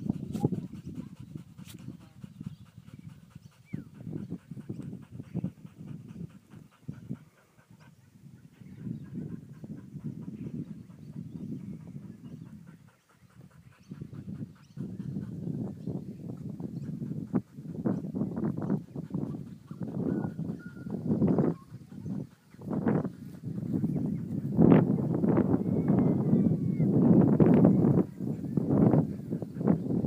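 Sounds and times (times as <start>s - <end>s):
dog panting: 0.0s - 30.0s.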